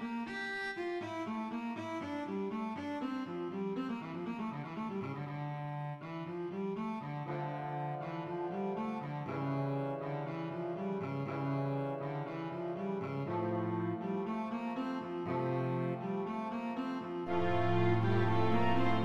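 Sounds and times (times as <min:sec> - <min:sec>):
cello playing bowed melody: 0:02.2 - 0:19.0.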